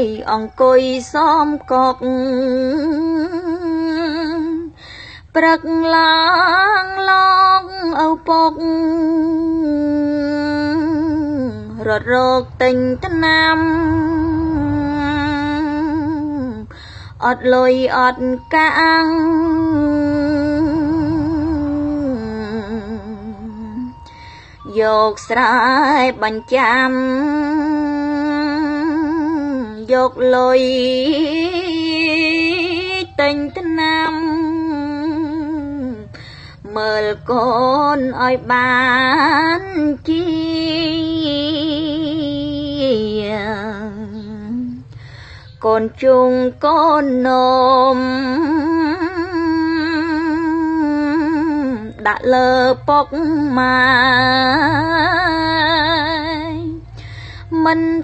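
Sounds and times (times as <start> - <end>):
woman chanting long wavering note: 0.0 - 4.7, 5.4 - 44.9.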